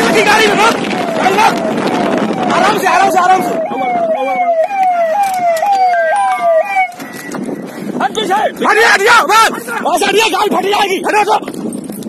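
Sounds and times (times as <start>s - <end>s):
electronic siren-like tone: 1.0s - 7.6s.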